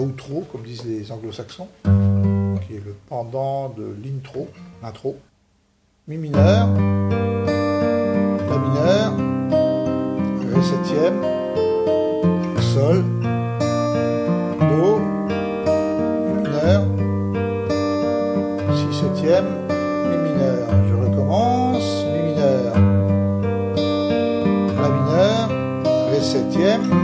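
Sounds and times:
fingerpicked acoustic guitar waltz: 1.8s - 2.8s, 4.4s - 4.9s, 6.3s - 27.0s.

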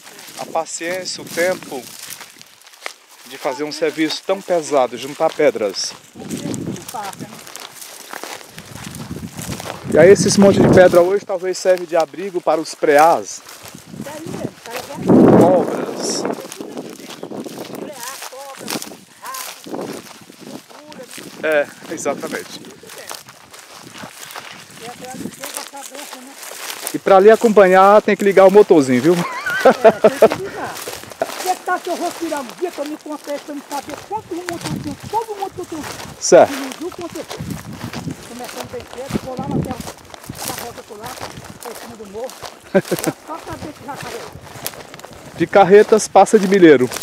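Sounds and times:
footsteps through dry grass: 0.0s - 47.0s.

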